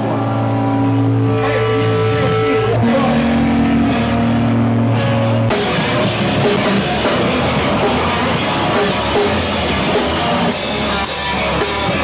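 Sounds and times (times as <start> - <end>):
distorted guitar notes: 0.0 - 12.0
rock band playing: 0.0 - 12.0
drums and cymbals crashing: 5.5 - 12.0.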